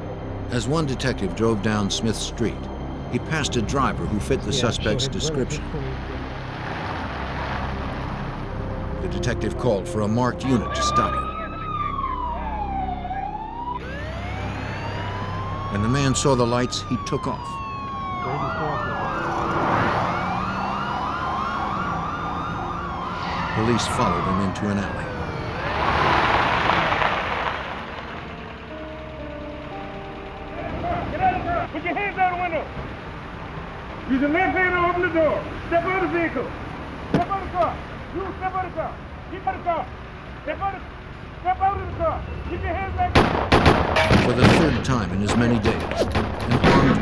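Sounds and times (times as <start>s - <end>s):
low hum: 0.0s - 9.1s
background music sustained notes: 0.0s - 43.7s
car road and wind noise: 0.0s - 47.0s
car speeding by: 4.4s - 9.1s, 13.8s - 29.8s.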